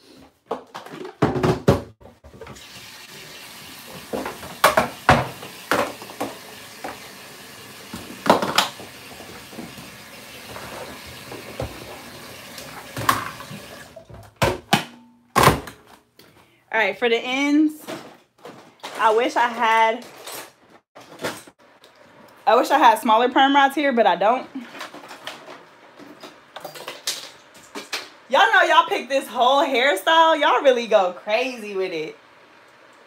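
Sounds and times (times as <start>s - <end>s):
tap water running into kettle: 2.4s - 14.0s.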